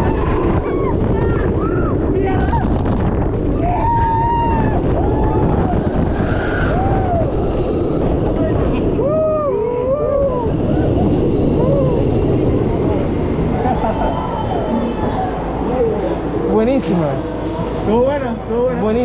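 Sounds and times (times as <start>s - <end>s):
riders shouting and screaming: 0.0s - 8.0s, 8.9s - 12.8s
wind buffeting camera: 0.0s - 15.6s.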